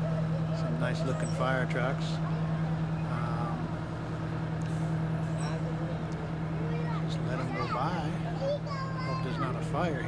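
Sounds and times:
faint voices: 0.0s - 10.0s
fire truck engines droning: 0.0s - 10.0s.

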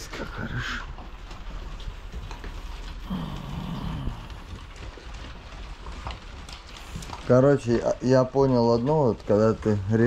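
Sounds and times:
claws clicking on wooden boards: 0.0s - 10.0s
puppies crunching dry kibble: 0.0s - 10.0s.

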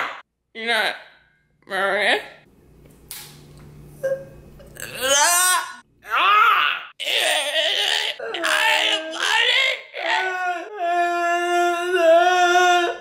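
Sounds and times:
man croaking like a burp: 4.7s - 5.8s.

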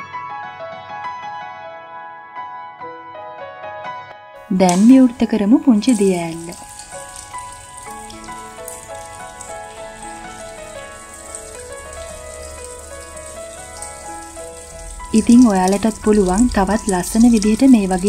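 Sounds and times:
soft instrumental music: 0.0s - 18.0s
fountain water trickling over rocks: 4.6s - 18.0s.

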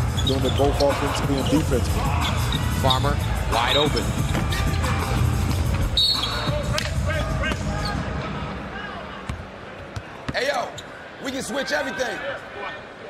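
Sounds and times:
crowd noise: 0.0s - 13.0s
shoe squeaks on court: 0.1s - 2.7s, 5.7s - 6.7s
referee's whistle: 5.8s - 6.8s.

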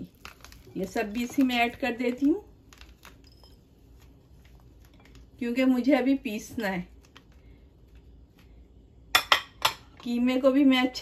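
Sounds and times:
ceramic dishes clinking: 9.1s - 9.9s.

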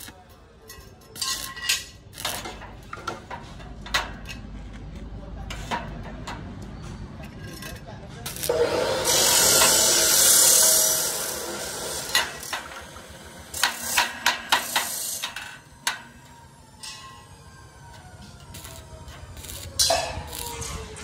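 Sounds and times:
arc welding crackling and hissing: 0.0s - 0.3s, 1.1s - 3.0s, 7.5s - 21.0s.

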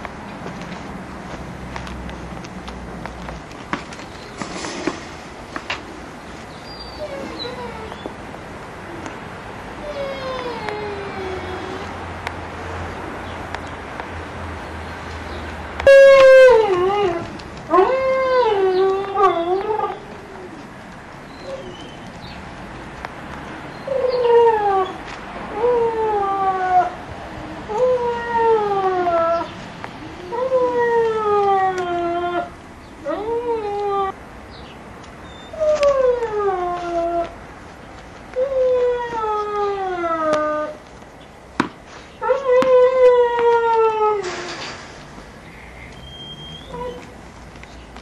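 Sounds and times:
puppy whining cries: 6.6s - 8.2s, 9.8s - 12.1s, 15.9s - 20.7s, 21.3s - 22.0s, 27.7s - 34.2s, 35.2s - 37.4s, 46.0s - 47.1s.

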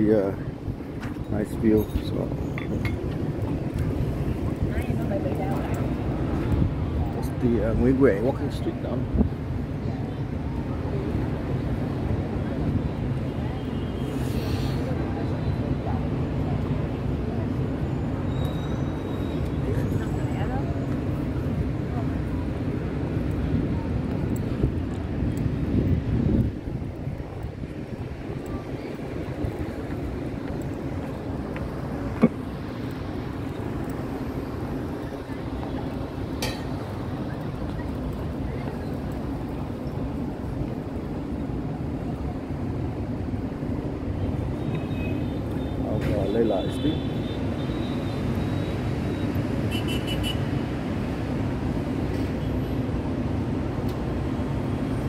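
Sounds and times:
city street traffic hum: 0.0s - 55.0s.

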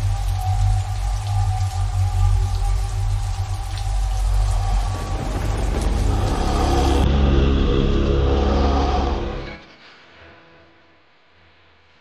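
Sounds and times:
deep rumble: 0.0s - 9.6s.

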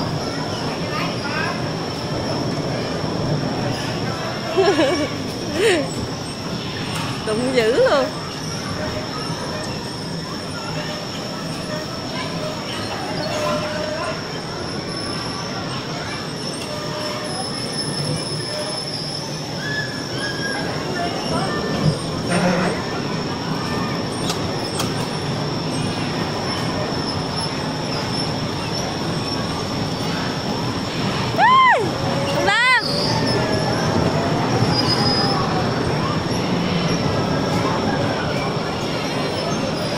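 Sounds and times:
bumper cars whining and rolling: 0.0s - 39.9s
rising and falling squeal: 16.3s - 39.9s.

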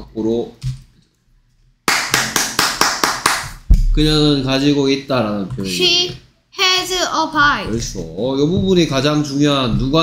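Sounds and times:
hands clapping: 1.8s - 3.7s.

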